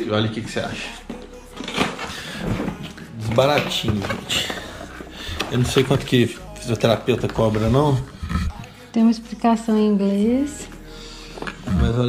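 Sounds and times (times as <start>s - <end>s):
packaging rustles and knocks: 1.6s - 8.0s.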